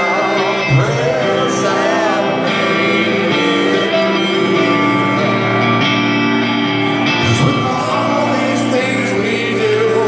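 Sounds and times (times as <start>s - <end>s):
rock band playing a ballad: 0.0s - 10.0s
strummed guitar: 0.0s - 10.0s.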